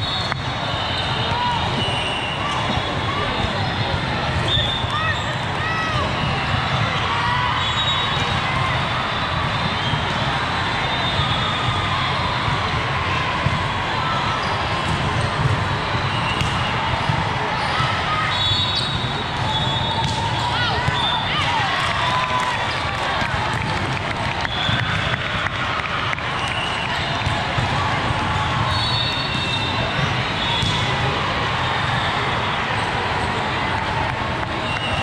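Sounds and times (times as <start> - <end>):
many voices chattering: 0.0 - 35.0
sneakers squeaking on court floor: 28.7 - 30.9.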